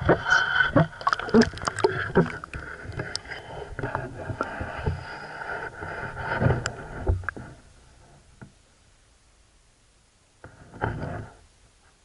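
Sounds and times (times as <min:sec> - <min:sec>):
rushing underwater noise: 0:00.0 - 0:07.5.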